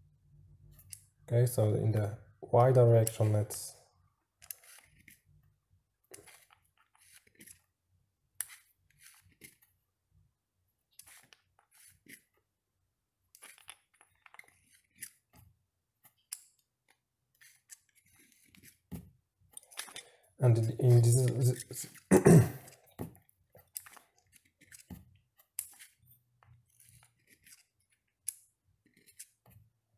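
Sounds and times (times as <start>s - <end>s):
caliper jaw clicks and scrapes: 4.4s - 5.2s, 8.4s - 9.6s, 13.3s - 15.2s, 23.6s - 24.9s, 26.6s - 29.4s.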